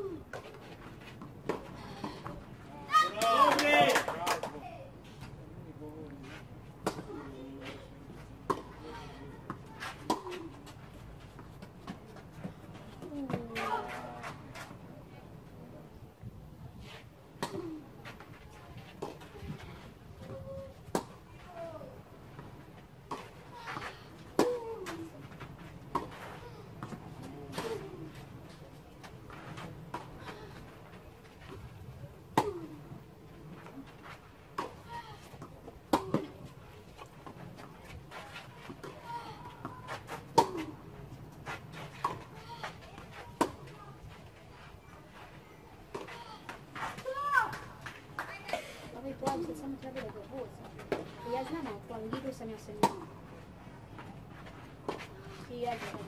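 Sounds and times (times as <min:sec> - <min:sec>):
tennis racquets striking ball: 0:23.1 - 0:25.0, 0:32.3 - 0:32.8, 0:35.9 - 0:36.3, 0:40.3 - 0:40.8, 0:52.1 - 0:53.1.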